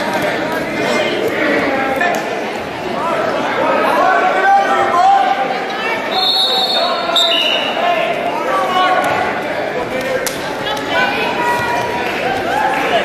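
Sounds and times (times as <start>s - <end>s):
spectators chatter echoing: 0.0s - 13.0s.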